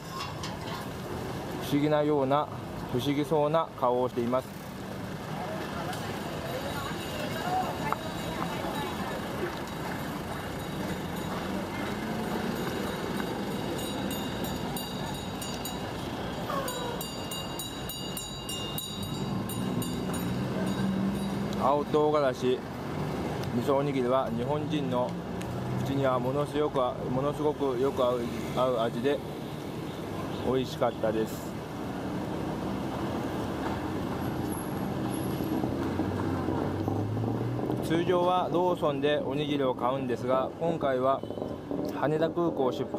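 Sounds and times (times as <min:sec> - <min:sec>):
vehicle engines running: 0:00.0 - 0:30.4, 0:31.3 - 0:38.8
trucks driving past: 0:00.0 - 0:42.9.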